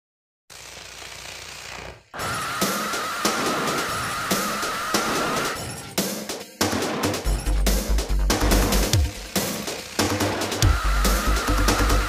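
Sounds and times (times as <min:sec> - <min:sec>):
harsh electronic noise with rattle: 0:00.5 - 0:05.8, 0:07.1 - 0:12.0.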